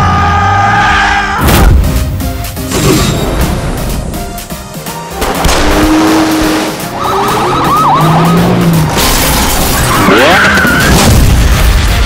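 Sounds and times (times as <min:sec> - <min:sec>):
loud trailer music: 0:00.0 - 0:12.0
car engines: 0:05.3 - 0:10.8
wailing pitch glides: 0:06.9 - 0:08.8.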